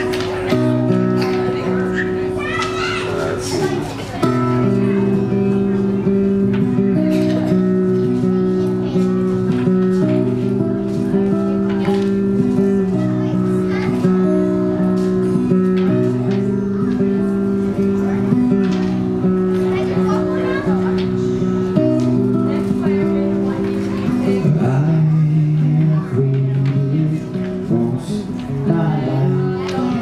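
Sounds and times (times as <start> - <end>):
acoustic guitar playing: 0.0 - 30.0.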